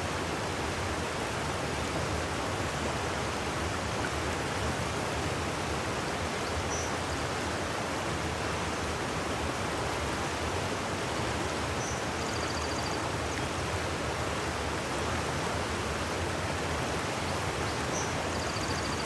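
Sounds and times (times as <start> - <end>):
creek rushing: 0.0 - 19.0.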